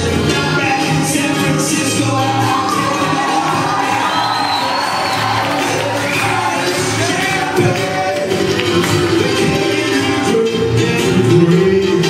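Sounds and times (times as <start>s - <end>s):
acoustic guitars strummed and picked: 0.0s - 12.0s
crowd in a room: 0.0s - 12.0s
person singing through a pa: 5.7s - 12.0s.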